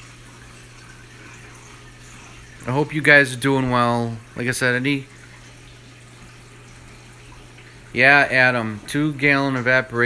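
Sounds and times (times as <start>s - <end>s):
low steady hum: 0.0s - 10.0s
running water hiss: 0.0s - 10.0s.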